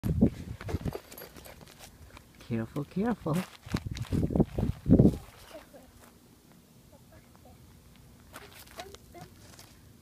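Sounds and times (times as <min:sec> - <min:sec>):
footsteps crunching on gravel: 0:00.6 - 0:06.2, 0:08.0 - 0:09.8.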